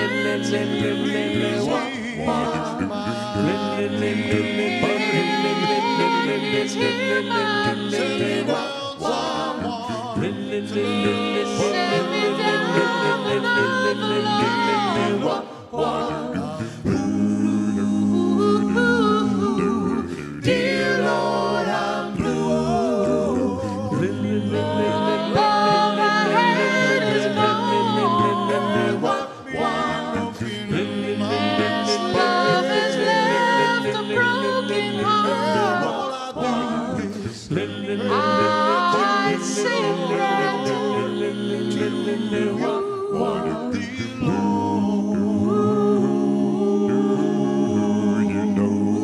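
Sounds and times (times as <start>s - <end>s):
a cappella vocal group singing: 0.0s - 49.0s.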